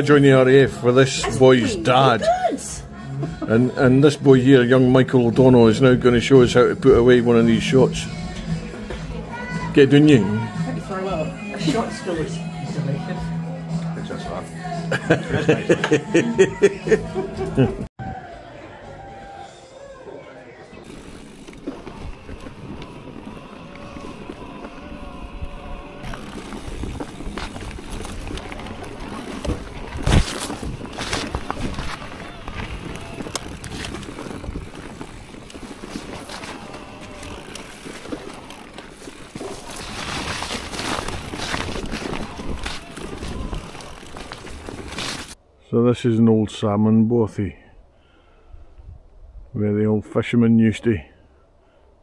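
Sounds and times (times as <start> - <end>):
bike tyres rumbling over bumps: 20.8 - 45.4.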